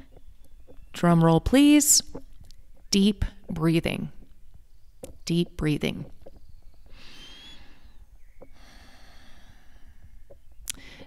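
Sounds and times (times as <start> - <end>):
woman breathing in deeply: 6.9 - 11.0
woman breathing out softly: 8.6 - 10.1, 10.8 - 11.0.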